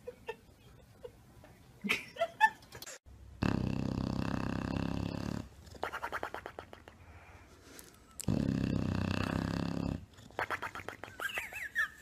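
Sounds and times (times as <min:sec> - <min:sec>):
dog snoring: 0:03.4 - 0:05.5, 0:08.2 - 0:10.1.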